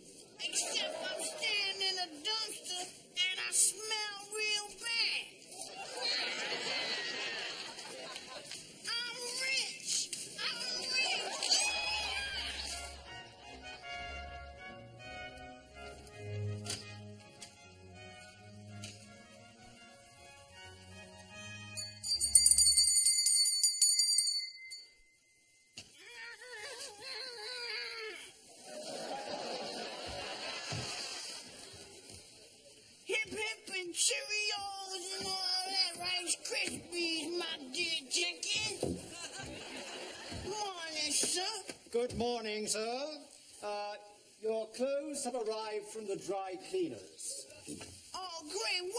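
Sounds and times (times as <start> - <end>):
musical backing: 11.5 - 22.9
handbell ringing: 21.7 - 25.7.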